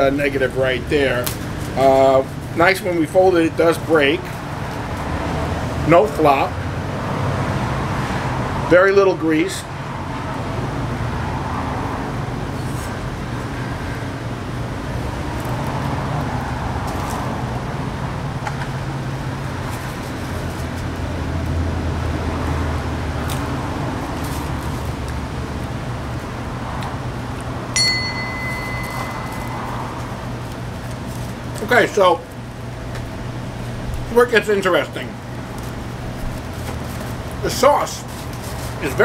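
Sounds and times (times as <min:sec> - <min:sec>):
road traffic hum: 0:00.0 - 0:39.0.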